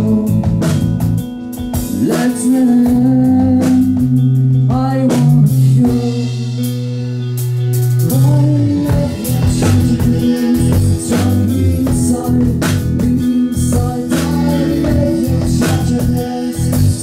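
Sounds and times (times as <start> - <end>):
man singing: 0.0 - 7.2, 7.9 - 17.0
bass guitar: 0.0 - 17.0
drums: 0.0 - 17.0
electric guitar: 0.0 - 17.0
keyboard: 0.0 - 17.0.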